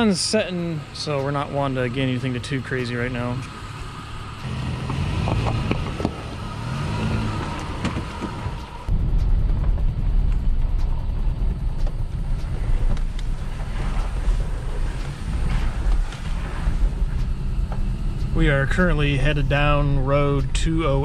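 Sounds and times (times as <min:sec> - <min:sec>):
truck engine running: 0:00.0 - 0:21.0
truck rumbling on dirt road: 0:00.0 - 0:21.0
sharp clicks: 0:04.2 - 0:21.0.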